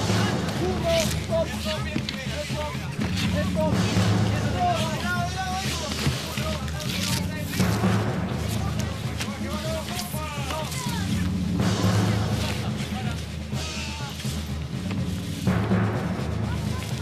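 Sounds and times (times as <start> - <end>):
people shouting: 0.0 - 14.5
background music with low drone: 0.0 - 17.0.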